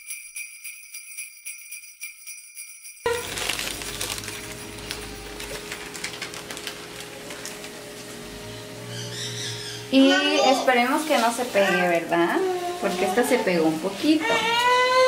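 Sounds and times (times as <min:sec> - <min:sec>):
music with shaking bells: 0:00.0 - 0:05.9
plastic bag crinkling: 0:03.1 - 0:08.2, 0:10.4 - 0:14.2.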